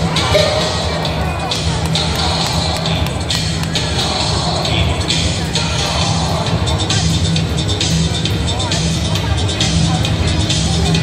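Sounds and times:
loud music with bass line and beat: 0.0 - 11.0.

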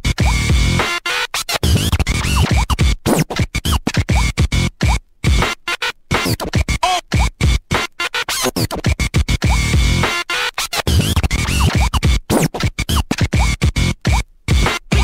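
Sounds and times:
stuttering electronic dance music: 1.6 - 5.4, 10.6 - 15.0.

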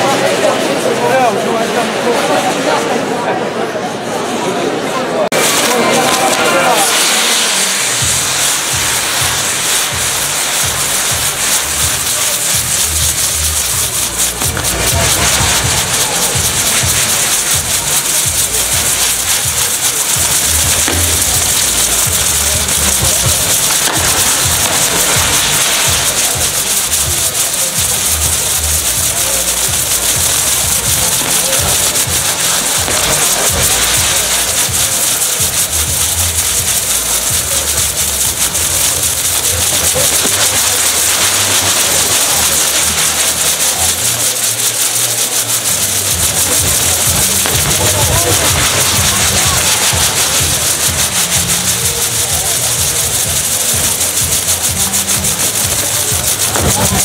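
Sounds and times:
fireworks hissing and crackling: 0.0 - 57.0.

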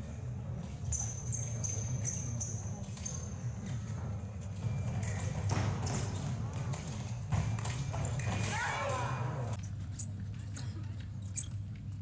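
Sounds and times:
low hall hum: 0.0 - 12.0
shoes squeaking on floor: 0.5 - 8.5, 11.3 - 11.7.

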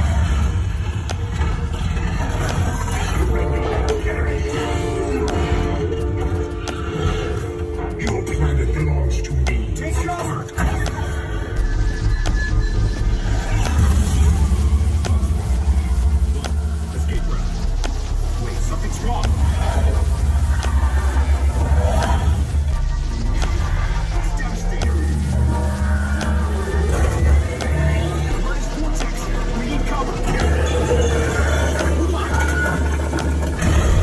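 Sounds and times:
deep rumble: 0.0 - 34.0
soundtrack music over speakers: 0.0 - 34.0.

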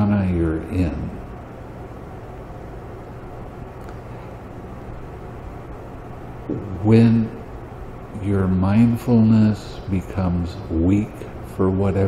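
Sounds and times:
low hum: 0.0 - 12.0
even hiss: 3.7 - 12.0.

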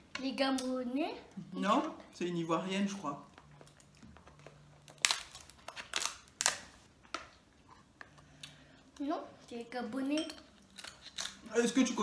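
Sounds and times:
crab shell cracking: 4.9 - 6.7, 10.6 - 11.4.

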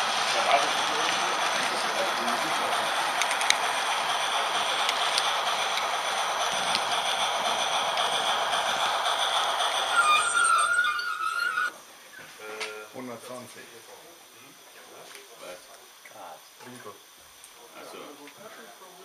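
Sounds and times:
model train rolling and motor: 0.0 - 11.8, 12.4 - 19.0
rail joint clicks: 0.1 - 11.7
train wheels squealing: 8.0 - 11.7.

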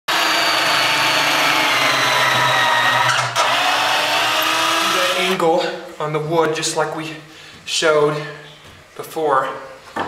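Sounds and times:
cordless drill motor running: 0.1 - 5.4.

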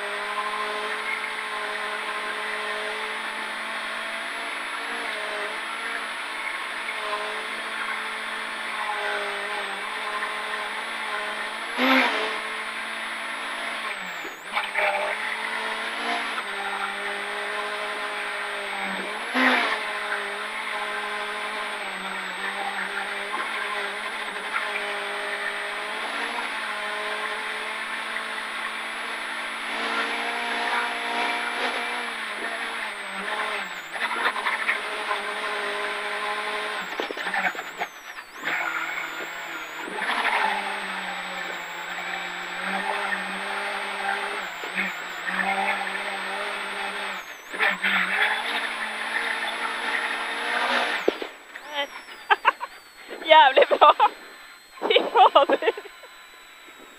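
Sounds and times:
car engine at high revs: 0.0 - 56.9.

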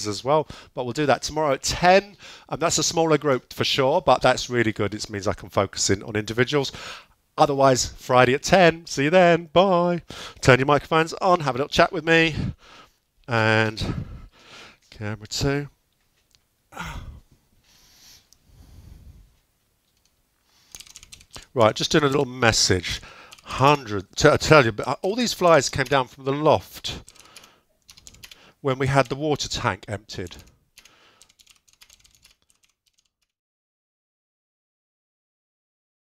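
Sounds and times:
man's voiced exhale: 16.7 - 19.2
keyboard typing clicks: 20.7 - 21.5, 27.0 - 28.4, 30.2 - 33.3.

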